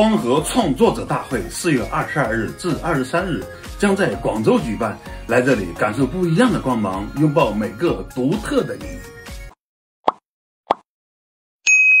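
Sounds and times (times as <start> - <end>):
short pop sound effects: 10.1 - 10.9
bright steady chime: 11.7 - 12.0.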